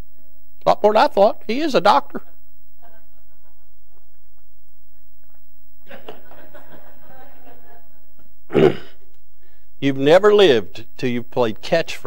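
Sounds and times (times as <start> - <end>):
person clearing throat: 8.5 - 9.0.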